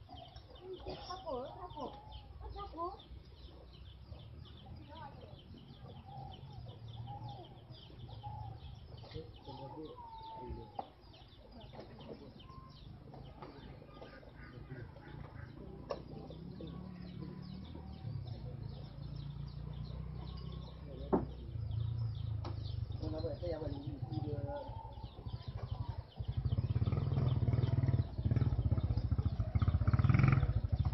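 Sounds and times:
low indistinct voices: 0.0s - 30.9s.

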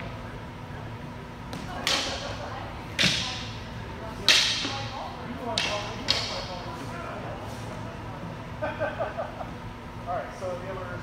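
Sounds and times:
sticks striking with echo: 4.2s - 4.9s.

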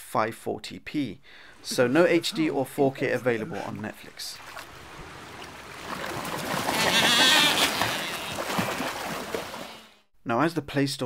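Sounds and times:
seabirds calling: 1.2s - 9.9s.

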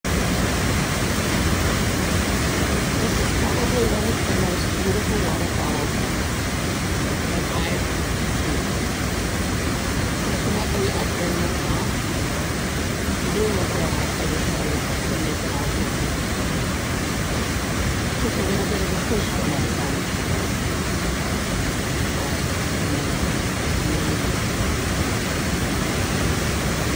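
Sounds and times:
waterfall rushing: 0.0s - 26.9s.

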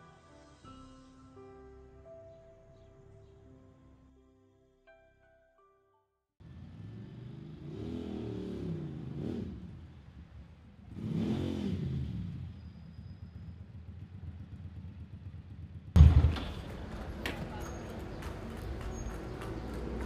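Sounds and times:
motorcycle engine revving and idling: 6.4s - 20.0s
loud thump: 16.0s - 16.8s.

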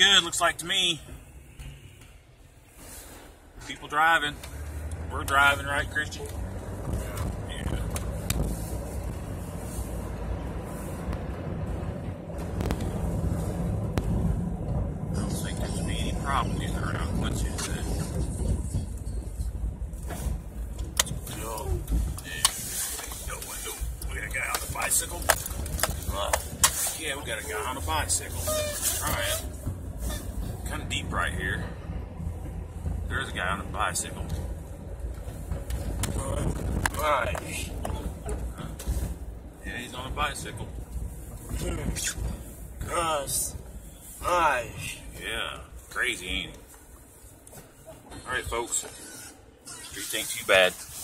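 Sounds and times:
voice: 0.0s - 1.1s, 3.6s - 4.4s, 5.1s - 7.9s, 15.1s - 18.3s, 21.2s - 25.4s, 26.0s - 29.5s, 30.6s - 31.7s, 33.1s - 34.4s, 36.1s - 38.7s, 39.6s - 40.8s, 41.5s - 43.6s, 44.2s - 46.6s, 49.9s - 50.8s
car engine rumbling: 0.0s - 51.0s
tyres on snowy road: 0.0s - 51.0s.

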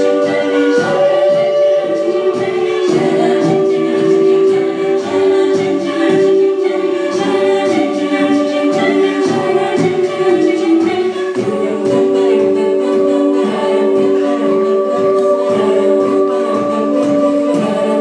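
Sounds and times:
choir singing a cappella: 0.0s - 18.0s.

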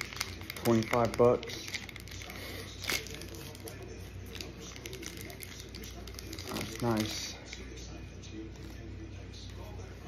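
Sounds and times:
packaging rustling: 0.0s - 7.3s.

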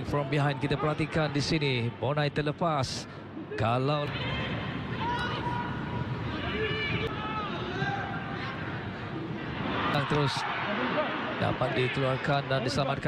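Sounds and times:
stadium crowd noise: 0.0s - 13.0s
distant shouts: 4.1s - 12.3s.

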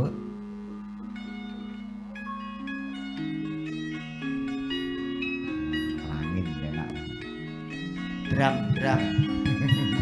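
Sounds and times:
gamelan ensemble playing softly: 0.0s - 10.0s.

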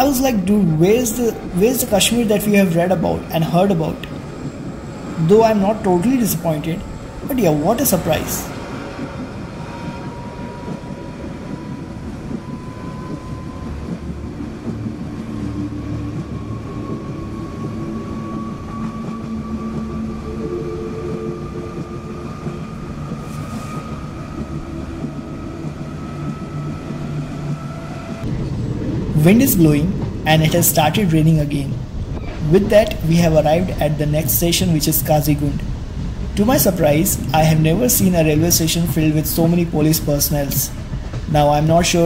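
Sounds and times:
faint rising whine: 0.0s - 33.8s
moving passenger train: 0.0s - 42.0s.

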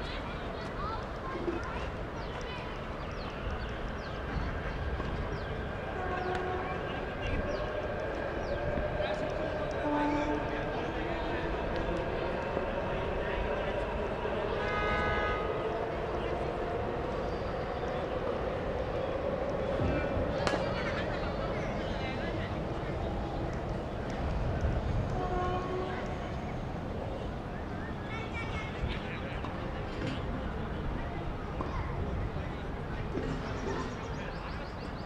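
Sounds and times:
faint distant voices: 0.0s - 35.0s.

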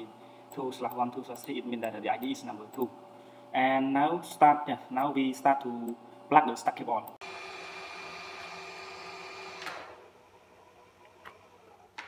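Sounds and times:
cooling fans whirring: 0.0s - 12.0s.

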